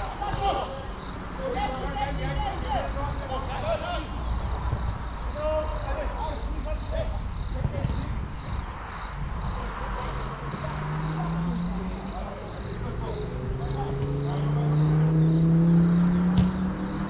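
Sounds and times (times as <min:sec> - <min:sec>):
distant players shouting: 0:00.0 - 0:17.0
insect chirping: 0:00.0 - 0:17.0
steady outdoor rumble: 0:00.0 - 0:17.0
low engine hum: 0:08.6 - 0:17.0.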